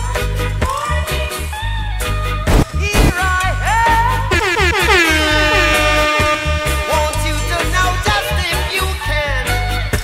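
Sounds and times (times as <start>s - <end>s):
reggae dance music: 0.0s - 10.0s
pulsing bass beat: 3.9s - 8.3s
air horn sound effect: 4.2s - 8.2s.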